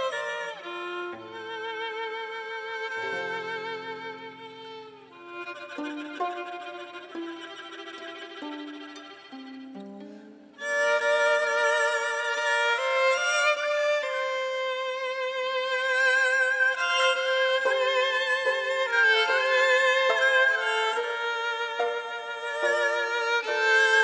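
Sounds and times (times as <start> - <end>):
two-string fiddle melody: 0.0 - 24.0
violin melody: 0.0 - 24.0.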